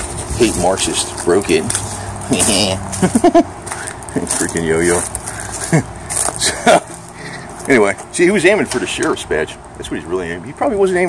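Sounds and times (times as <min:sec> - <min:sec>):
man chuckling: 0:02.9 - 0:03.5, 0:05.3 - 0:07.5.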